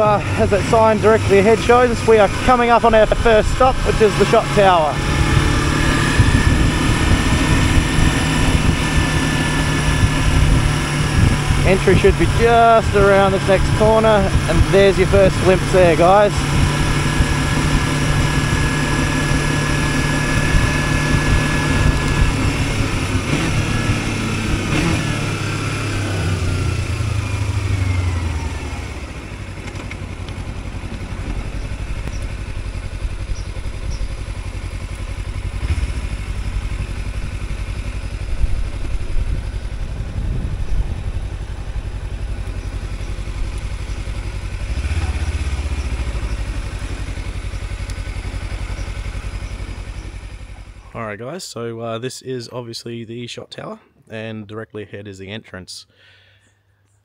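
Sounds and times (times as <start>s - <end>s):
motorcycle engine: 0.0s - 51.0s
wind rush: 1.9s - 24.5s, 38.2s - 41.9s.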